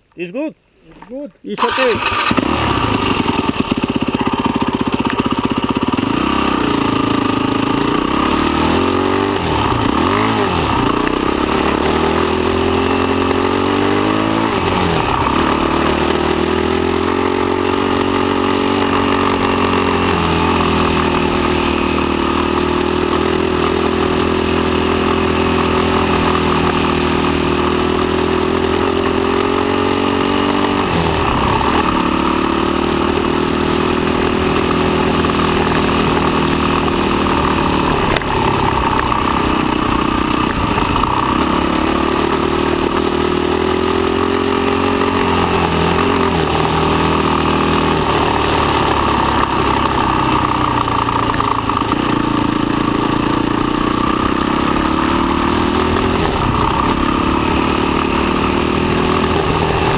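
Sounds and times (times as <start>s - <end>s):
motorcycle engine revving: 1.6s - 59.9s.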